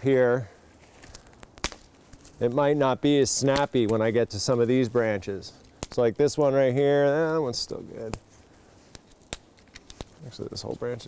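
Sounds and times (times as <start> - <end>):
twigs snapping: 0.6 - 11.0.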